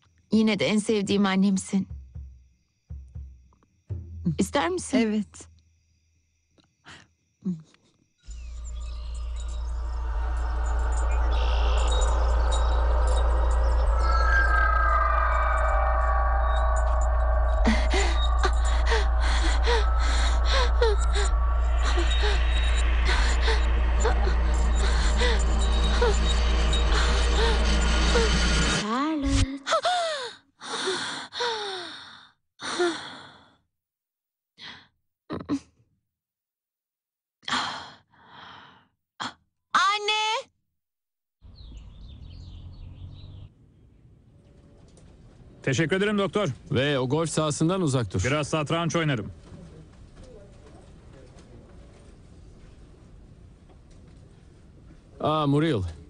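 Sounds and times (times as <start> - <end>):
high twittering: 8.3 - 28.8
shimmering chime-like tones: 8.3 - 28.8
low sustained drone: 8.3 - 28.9
woman gasping: 17.6 - 22.4
woman sighing breaths: 17.6 - 26.2.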